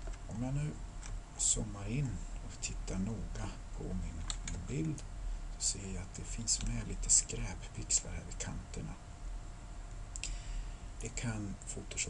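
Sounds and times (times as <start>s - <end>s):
faint steady hum: 0.0s - 12.0s
computer mouse click: 4.2s - 5.0s.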